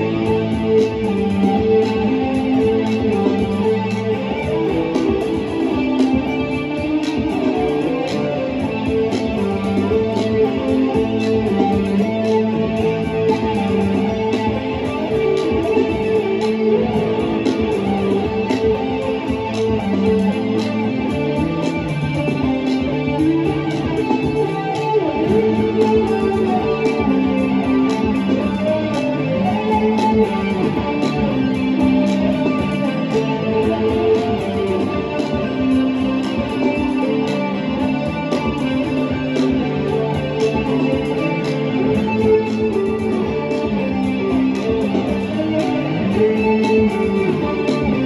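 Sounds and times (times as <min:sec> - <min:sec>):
electric guitar with effects: 0:00.0 - 0:48.0
looped bass line: 0:00.0 - 0:48.0
looped drum beat: 0:00.0 - 0:48.0.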